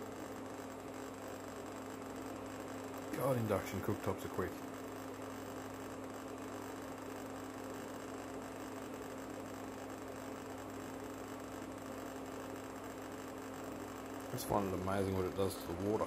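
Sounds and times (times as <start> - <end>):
induction cooktop humming: 0.0 - 16.0.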